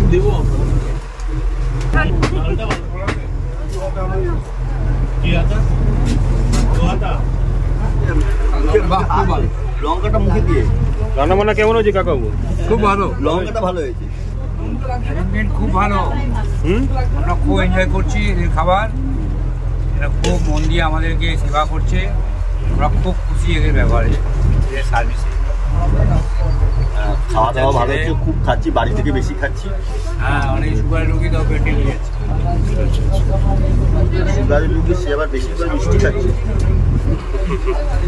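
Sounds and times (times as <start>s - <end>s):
people talking: 0.0s - 1.2s, 1.9s - 38.0s
boat engine droning: 0.0s - 38.0s.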